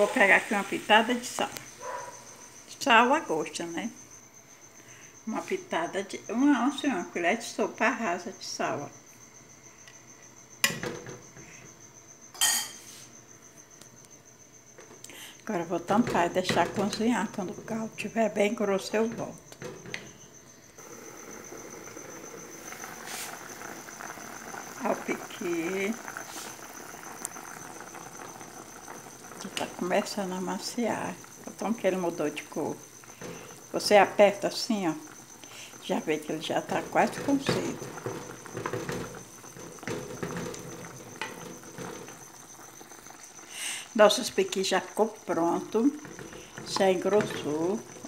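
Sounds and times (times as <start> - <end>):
stew bubbling in a pot: 0.0 - 3.5, 14.8 - 48.0.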